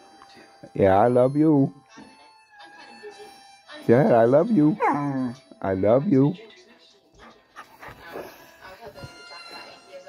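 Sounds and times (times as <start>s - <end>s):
dog whining: 4.7s - 5.4s.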